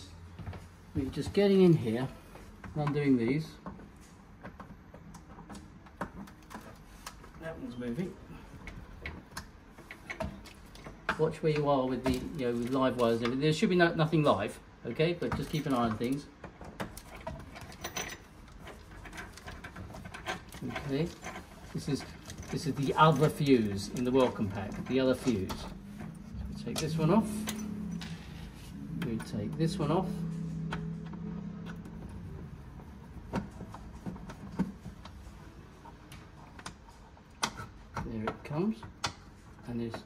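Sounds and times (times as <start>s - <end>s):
light clicks and rattles of hand work: 0.3s - 40.0s
low hum: 22.0s - 35.7s.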